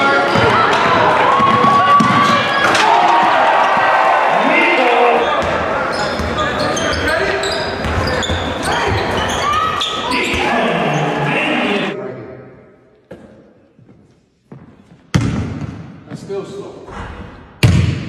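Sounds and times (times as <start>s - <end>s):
crowd voices: 0.0s - 12.2s
sneaker squeaks: 5.2s - 11.2s.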